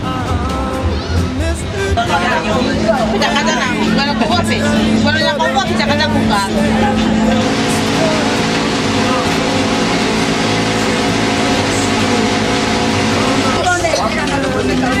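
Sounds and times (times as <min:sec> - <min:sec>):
steady mechanical motor drone: 0:01.9 - 0:15.0
person speaking: 0:02.0 - 0:15.0.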